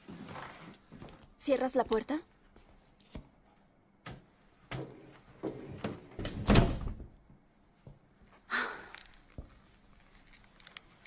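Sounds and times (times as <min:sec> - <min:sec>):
door shutting: 0:04.1 - 0:07.1.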